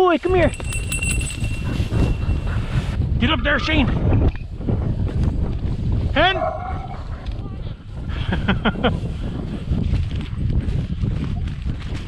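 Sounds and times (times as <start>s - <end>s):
wind buffeting microphone: 0.0s - 12.0s
footsteps in dry grass: 0.4s - 3.0s, 9.1s - 12.0s.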